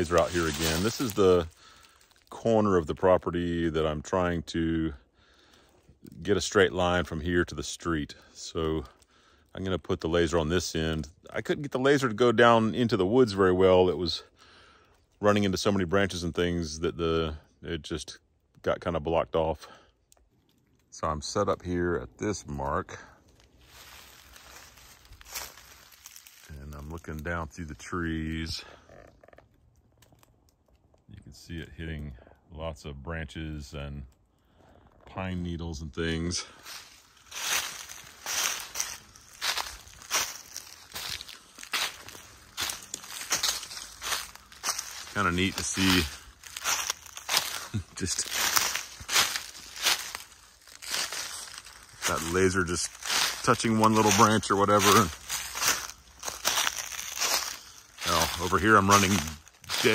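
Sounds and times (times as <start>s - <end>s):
footsteps crunching dry leaves: 0.0s - 2.4s, 23.3s - 27.2s, 36.4s - 59.9s.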